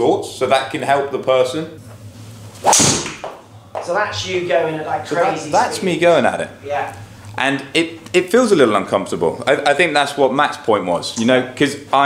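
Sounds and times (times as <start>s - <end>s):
club striking golf ball: 2.6s - 3.4s.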